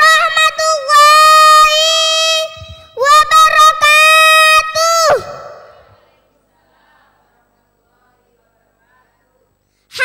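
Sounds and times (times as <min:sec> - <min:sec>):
girl singing high notes: 0:00.0 - 0:05.7.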